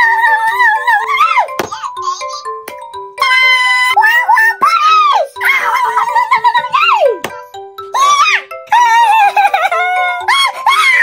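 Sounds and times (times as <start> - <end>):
playful background music: 0.0 - 11.0.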